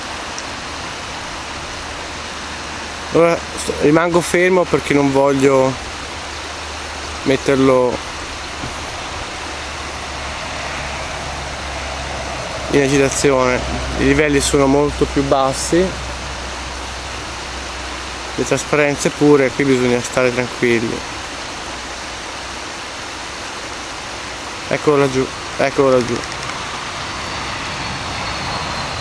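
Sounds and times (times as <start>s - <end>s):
river water rushing: 0.0s - 29.0s
low rumble: 5.8s - 18.2s.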